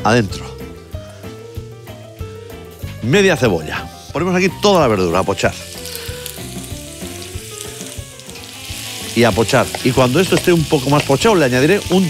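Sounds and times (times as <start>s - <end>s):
vegetables sizzling in hot oil: 4.8s - 12.0s.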